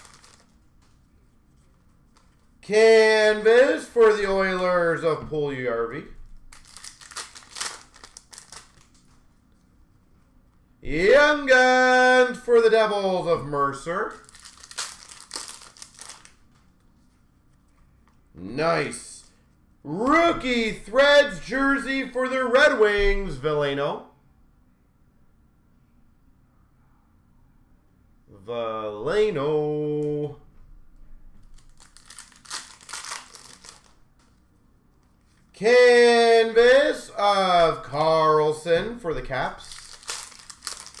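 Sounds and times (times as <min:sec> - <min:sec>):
trading cards rustling and crinkling: 0:00.0 - 0:02.6, 0:06.3 - 0:10.4, 0:14.0 - 0:18.3, 0:31.4 - 0:35.5, 0:39.2 - 0:41.0.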